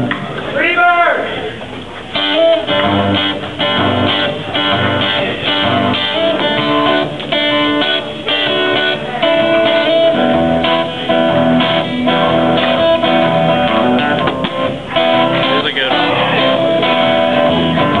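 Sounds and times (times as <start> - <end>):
acoustic guitar strumming chords: 0.0 - 0.5, 1.9 - 18.0.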